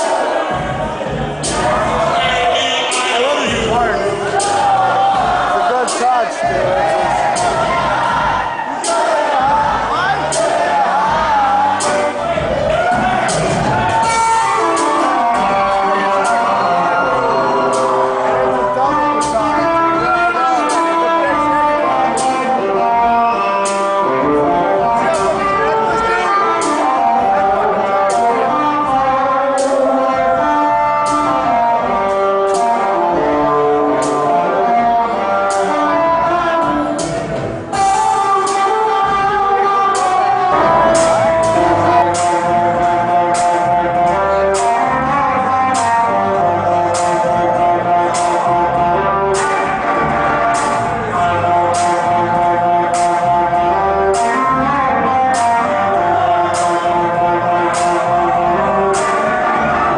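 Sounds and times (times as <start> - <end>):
guitar: 0.0 - 59.9
live hip hop band: 0.0 - 59.9
drum hits: 0.4 - 16.5, 36.3 - 43.8, 49.3 - 53.4
electric guitar held notes: 38.7 - 59.9
sharp drum or cymbal hits: 40.0 - 43.6.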